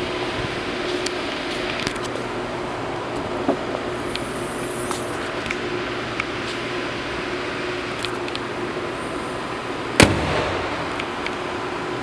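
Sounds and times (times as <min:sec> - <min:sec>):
car hood slamming shut: 0:10.0 - 0:10.9.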